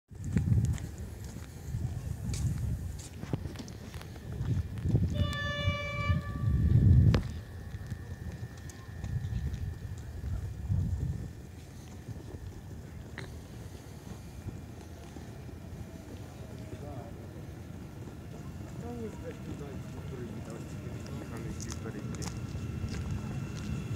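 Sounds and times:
wind buffeting microphone: 0:00.1 - 0:23.9
electric train passing: 0:00.9 - 0:23.9
train horn: 0:05.1 - 0:06.9.

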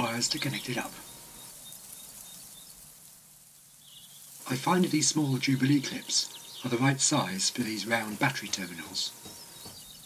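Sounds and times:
distant bird chirps: 0:00.0 - 0:10.0.

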